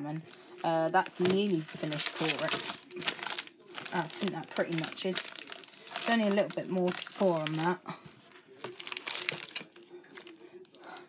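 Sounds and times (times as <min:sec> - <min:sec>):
plastic wrapping crinkling: 0:00.2 - 0:11.0.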